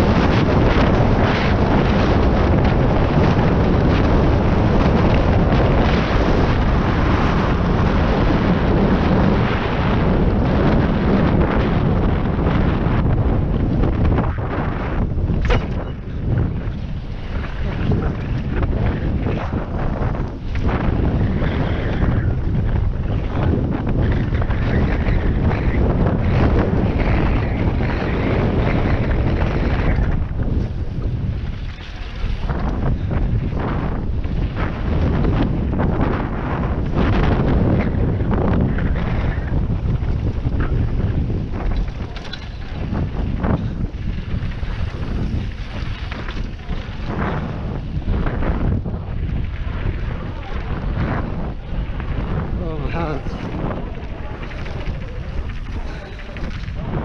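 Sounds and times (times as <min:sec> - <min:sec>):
tyres rumbling on gravel trail: 0:00.0 - 0:57.0
wind buffeting microphone: 0:00.0 - 0:57.0
bike knocking over bumps: 0:13.7 - 0:21.1.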